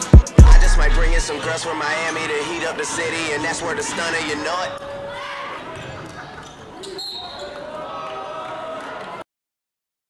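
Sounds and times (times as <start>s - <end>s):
voices echoing in a hall: 0.8s - 9.2s.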